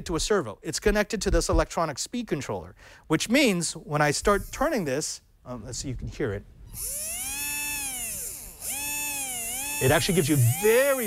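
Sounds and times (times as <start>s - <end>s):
electric motor whining: 6.7s - 11.0s.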